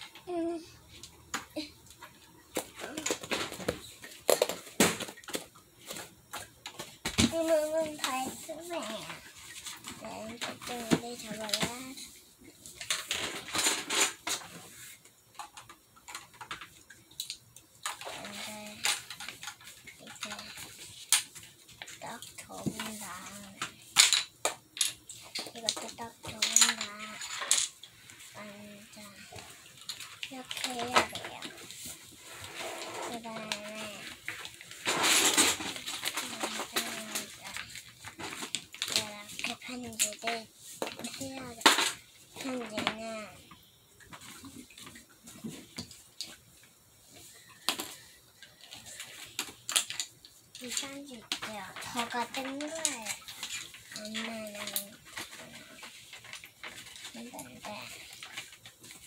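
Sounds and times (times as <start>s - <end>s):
young child's drawn-out voice: 0.3s - 0.8s, 7.3s - 9.2s, 10.0s - 12.0s, 22.0s - 23.6s, 25.6s - 27.2s, 28.4s - 29.3s, 33.0s - 34.1s, 36.2s - 37.6s, 41.0s - 41.6s, 42.4s - 43.4s
paper rustling and being folded: 5.2s - 12.1s, 18.0s - 23.6s, 28.0s - 41.6s, 50.6s - 59.0s.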